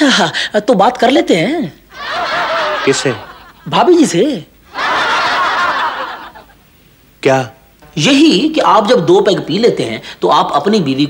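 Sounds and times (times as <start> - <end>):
studio audience laughing: 2.0 - 3.8, 4.7 - 6.6
person speaking: 7.5 - 11.0.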